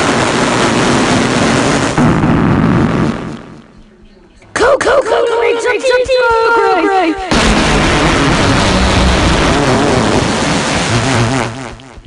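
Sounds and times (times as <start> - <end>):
loud distorted noise blast: 0.0 - 3.7, 7.3 - 12.0.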